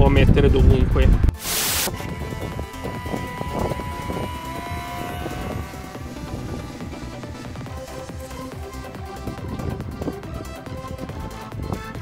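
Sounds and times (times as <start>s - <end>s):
electric motor and propeller whining: 1.3s - 11.6s
background music: 1.4s - 12.0s
wind buffeting microphone: 1.9s - 12.0s.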